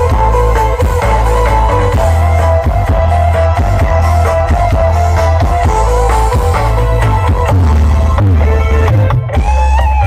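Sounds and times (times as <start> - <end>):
music through loudspeakers: 0.0 - 10.0.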